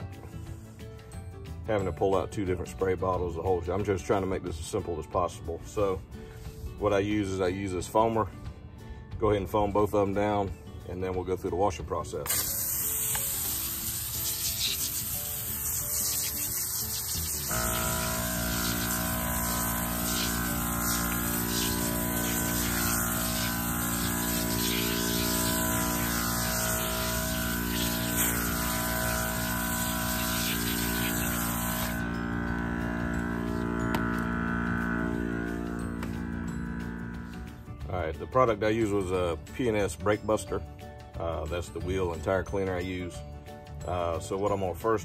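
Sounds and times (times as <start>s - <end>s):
soft background music: 0.0s - 45.0s
foam sprayer hissing: 12.3s - 37.2s.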